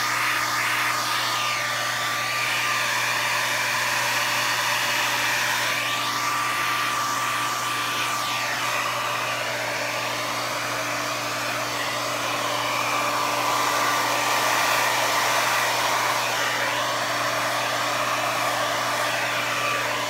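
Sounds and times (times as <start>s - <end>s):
hair dryer blowing: 0.0s - 20.0s.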